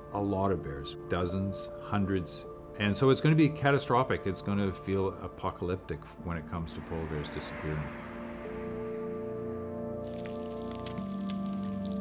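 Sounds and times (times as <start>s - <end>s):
background music: 0.0s - 12.0s
sharp crackles: 10.1s - 12.0s.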